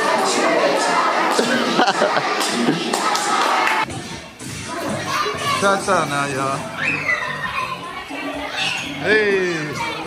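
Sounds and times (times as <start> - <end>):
children chattering excitedly: 0.0 - 10.0.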